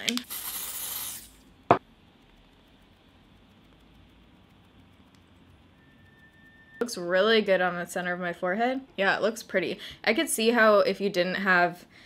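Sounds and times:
aerosol spray hiss: 0:00.1 - 0:01.4.

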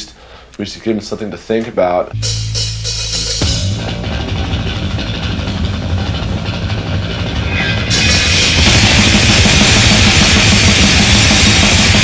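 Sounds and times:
distorted electric bass riff: 0:02.2 - 0:12.0.

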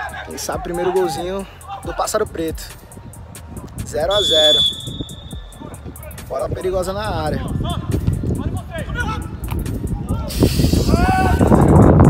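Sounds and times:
voices: 0:00.0 - 0:11.5
background music: 0:00.0 - 0:12.0.

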